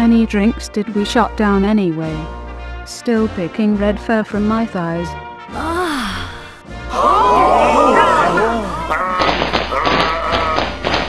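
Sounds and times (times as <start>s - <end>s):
music playing: 0.0s - 11.0s
person sighing: 5.6s - 10.8s.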